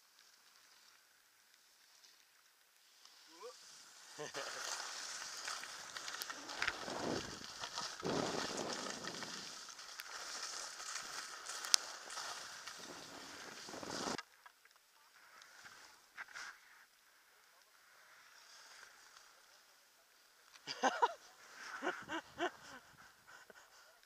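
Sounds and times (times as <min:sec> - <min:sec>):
skis scraping over snow: 0:00.0 - 0:14.2, 0:15.1 - 0:24.0
wind on microphone: 0:06.5 - 0:09.6.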